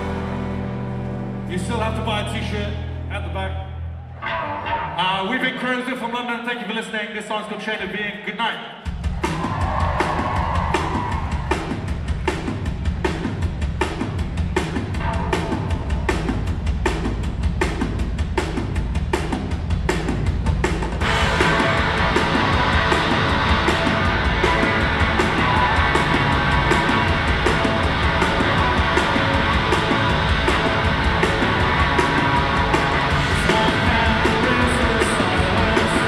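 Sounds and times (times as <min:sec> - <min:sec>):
electric guitars: 0:00.0 - 0:01.5, 0:03.8 - 0:05.0, 0:21.0 - 0:36.0
rock band playing live: 0:00.0 - 0:05.6, 0:08.9 - 0:36.0
drums and bass beat: 0:08.8 - 0:36.0.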